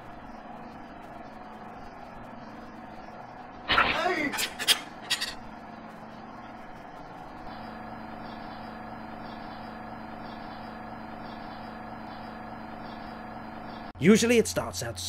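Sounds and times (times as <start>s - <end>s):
machine-like hum of held tones: 0.0s - 14.0s.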